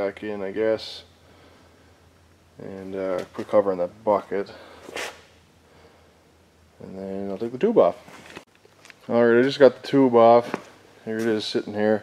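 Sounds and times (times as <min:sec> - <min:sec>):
man speaking: 0:00.0 - 0:01.1, 0:02.6 - 0:04.7, 0:06.8 - 0:08.0, 0:09.0 - 0:12.0
faint low hum: 0:00.0 - 0:12.0.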